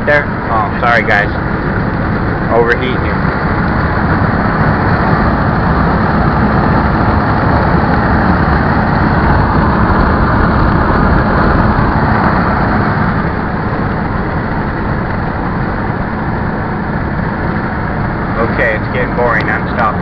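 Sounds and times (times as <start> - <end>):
vehicle road and wind noise: 0.0 - 20.0.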